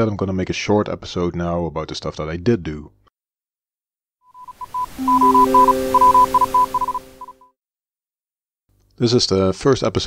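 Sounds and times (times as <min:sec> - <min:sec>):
high electronic beeps: 0:04.3 - 0:07.5
synthesizer chord: 0:05.0 - 0:07.3.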